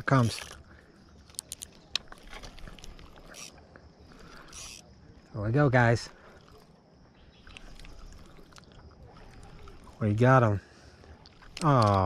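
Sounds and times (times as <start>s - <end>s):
fishing reel clicks: 0.2s - 0.6s, 1.2s - 3.6s, 4.3s - 4.9s, 11.3s - 12.0s
fishing reel winding: 0.2s - 0.6s, 1.3s - 3.6s, 4.2s - 4.9s.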